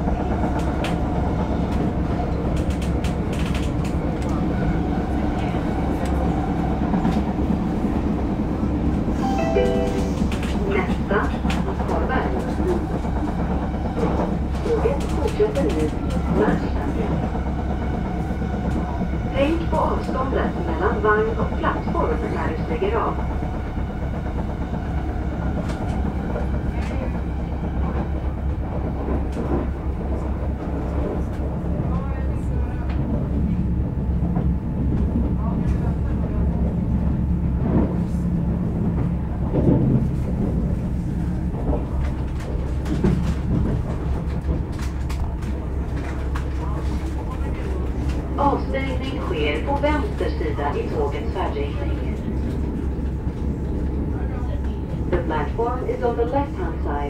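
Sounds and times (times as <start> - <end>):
train rumbling in motion: 0.0 - 57.0.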